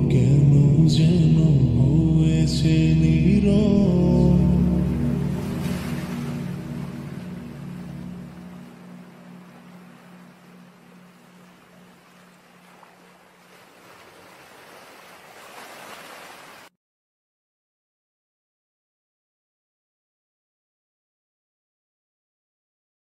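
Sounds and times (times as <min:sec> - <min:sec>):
low humming chant: 0:00.0 - 0:13.3
ocean surf washing on shore: 0:04.3 - 0:16.7.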